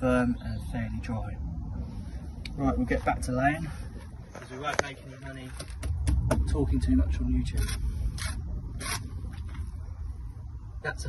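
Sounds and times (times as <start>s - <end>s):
steady low rumble: 0.0s - 11.0s
gritty scrapes: 7.4s - 9.8s.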